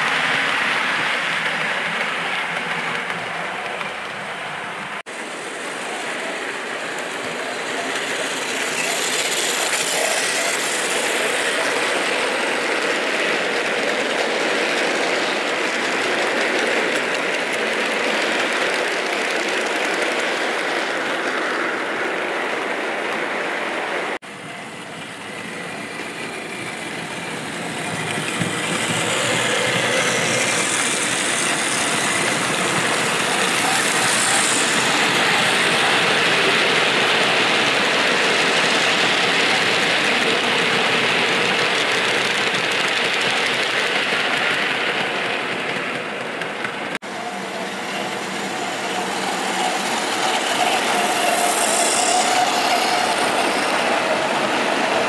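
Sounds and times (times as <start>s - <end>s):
model train wheels clattering: 25.8s - 55.0s.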